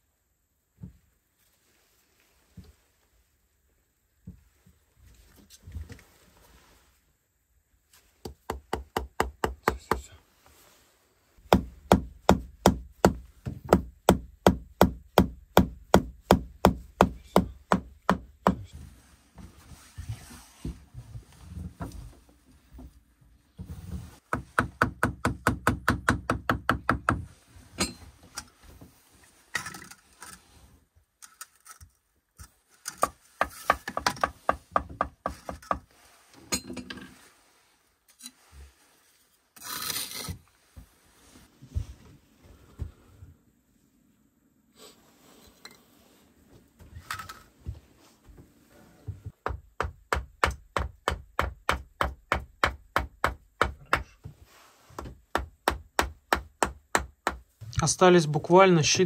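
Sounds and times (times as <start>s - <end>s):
trowel scraping mortar: 39.6s - 40.5s.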